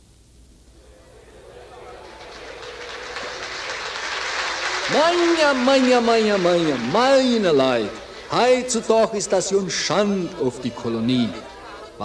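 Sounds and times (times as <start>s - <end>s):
steady noisy sound: 0.0s - 12.0s.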